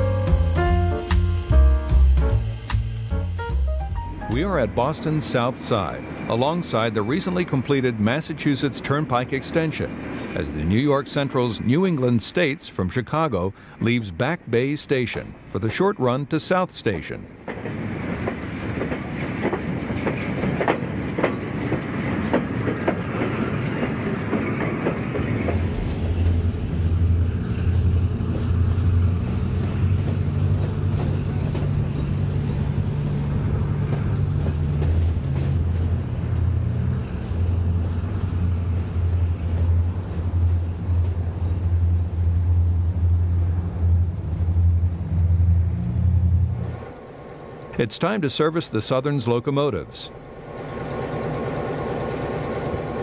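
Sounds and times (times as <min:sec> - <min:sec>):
diesel locomotive engine throbbing: 0:00.0 - 0:11.9, 0:17.3 - 0:53.0
train wheels clicking over rail joints: 0:17.4 - 0:45.6.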